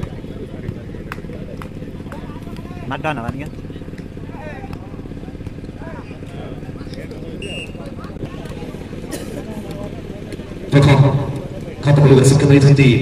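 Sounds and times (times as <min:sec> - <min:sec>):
low mechanical hum: 0:00.0 - 0:13.0
high whistle-like tone: 0:07.4 - 0:07.8.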